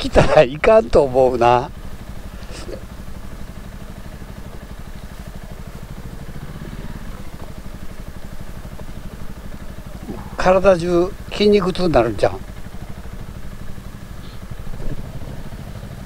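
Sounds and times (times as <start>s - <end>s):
motorcycle engine puttering: 0.0s - 16.0s.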